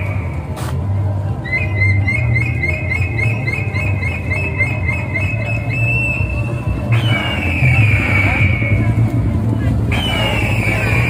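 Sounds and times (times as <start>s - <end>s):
steady low rumble: 0.0s - 11.0s.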